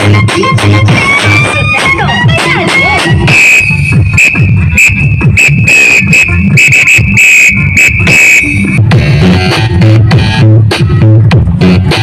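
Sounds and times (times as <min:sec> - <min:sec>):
dance music with heavy bass: 0:00.0 - 0:12.0
high whistle-like tone: 0:03.3 - 0:08.8.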